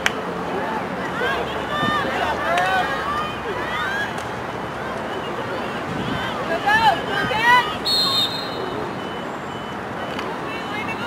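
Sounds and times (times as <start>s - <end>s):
distant voices: 0.0s - 11.0s
steady outdoor hiss: 0.0s - 11.0s
reversing alarm beeping: 7.9s - 10.9s.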